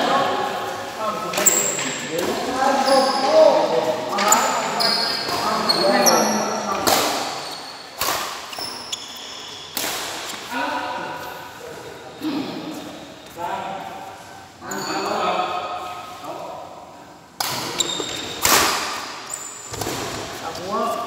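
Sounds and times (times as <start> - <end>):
rackets hitting shuttlecock: 8.0 - 8.6.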